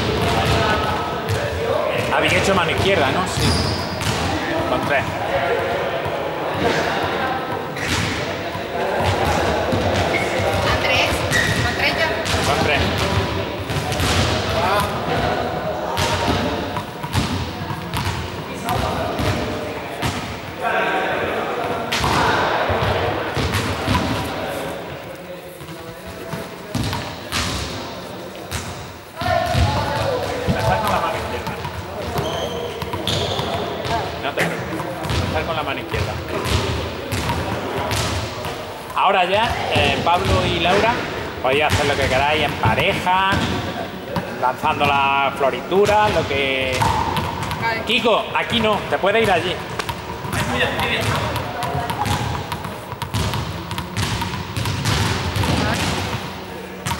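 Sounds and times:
balls bouncing on gym floor: 0.0 - 56.9
voices talking in echoing hall: 0.0 - 56.9.

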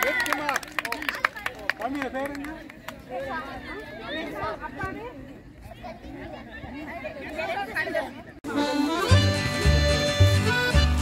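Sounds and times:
instrumental music with held notes: 8.4 - 11.0.

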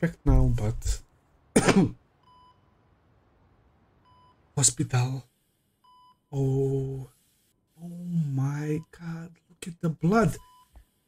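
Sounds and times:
man clearing throat: 1.6 - 2.0
faint electronic beep: 2.2 - 2.6, 4.0 - 4.4, 5.8 - 7.0, 10.3 - 11.0.

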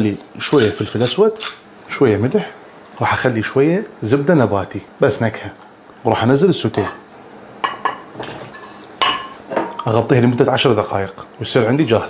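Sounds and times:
crockery and glass clink: 7.6 - 9.8.

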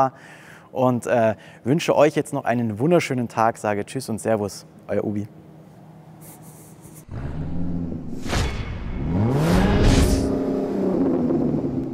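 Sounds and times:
whoosh: 7.1 - 10.5
car engine revving: 7.1 - 11.9.

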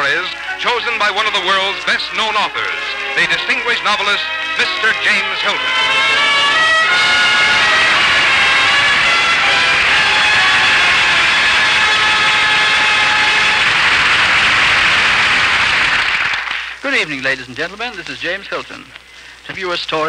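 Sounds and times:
orchestral music: 0.0 - 16.2
audience applause: 2.5 - 16.8.

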